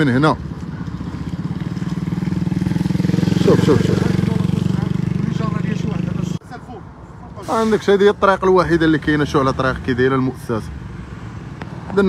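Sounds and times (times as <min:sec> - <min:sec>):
small motorcycle engine running: 0:00.8 - 0:06.3.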